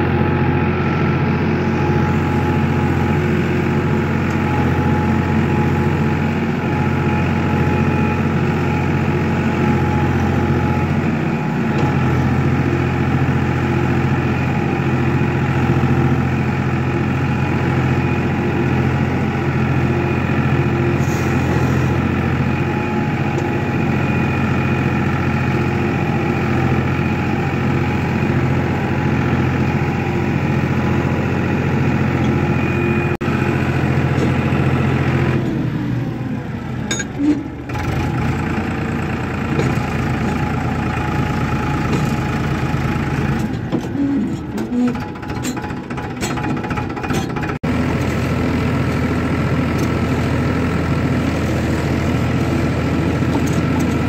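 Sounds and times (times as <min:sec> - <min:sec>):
tractor diesel engine running: 0:00.0 - 0:54.0
engine knocks: 0:37.7 - 0:47.6.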